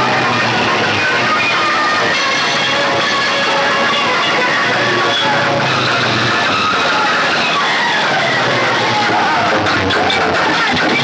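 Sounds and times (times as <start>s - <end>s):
loud distorted music: 0.0s - 11.0s.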